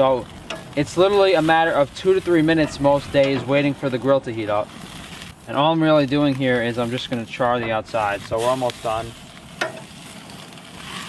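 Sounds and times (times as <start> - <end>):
meat sizzling on a grill: 0.0 - 11.0.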